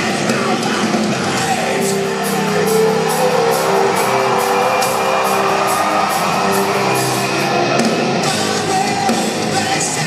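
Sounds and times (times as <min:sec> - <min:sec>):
drums with cymbal beat: 0:00.0 - 0:10.0
rock band playing live: 0:00.0 - 0:10.0.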